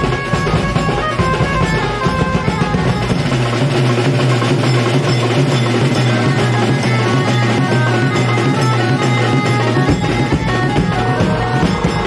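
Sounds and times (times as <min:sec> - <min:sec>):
street band drumming: 0:00.0 - 0:12.0.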